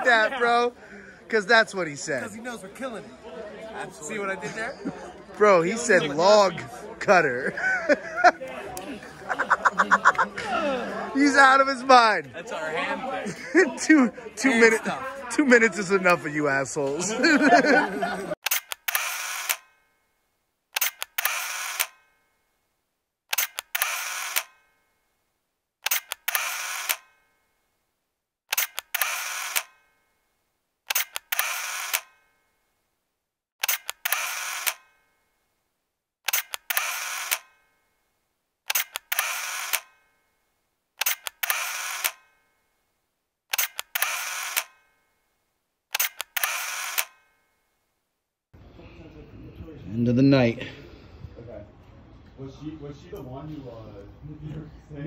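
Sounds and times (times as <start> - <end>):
camera shutter double click: 18.4 - 19.8, 20.8 - 22.2, 23.3 - 24.7, 25.8 - 27.2, 28.5 - 29.9, 30.9 - 32.3, 33.6 - 35.0, 36.3 - 37.7, 38.7 - 40.1, 41.0 - 42.4, 43.5 - 45.0, 45.9 - 47.4.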